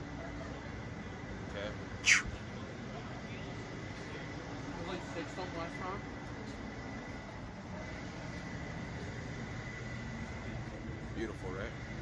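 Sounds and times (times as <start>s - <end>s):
low traffic rumble: 0.0s - 12.0s.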